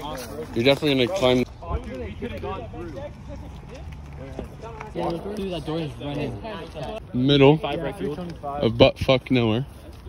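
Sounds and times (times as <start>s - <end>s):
teenage boys talking: 0.0s - 10.0s.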